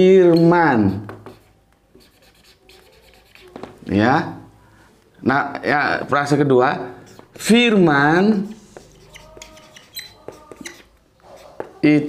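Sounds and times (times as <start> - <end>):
marker pen scratching on whiteboard: 0.2 - 3.9, 7.0 - 7.7, 8.3 - 11.9.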